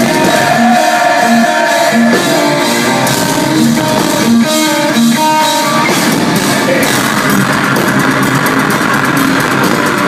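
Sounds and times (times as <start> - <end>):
bass guitar: 0.0 - 10.0
drums: 0.0 - 10.0
electric guitars playing held notes: 0.0 - 10.0.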